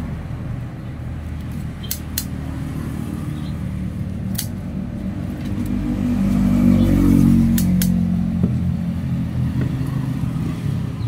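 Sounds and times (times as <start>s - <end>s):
hand shears snipping stems: 1.4s - 2.5s, 4.2s - 4.6s, 7.4s - 8.0s.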